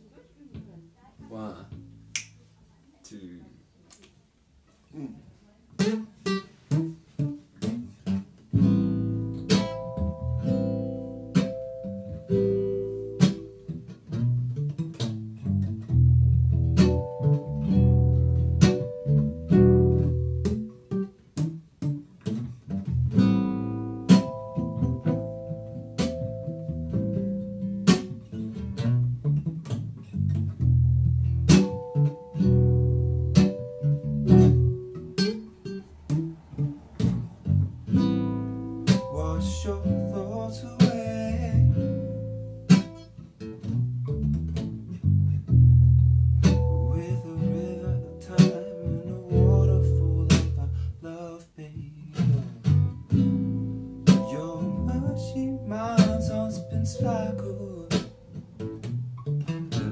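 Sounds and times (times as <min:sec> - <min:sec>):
classical guitar playing chords: 0:05.7 - 0:59.9
electronic keyboard holding notes: 0:08.5 - 0:51.1, 0:52.6 - 0:59.9.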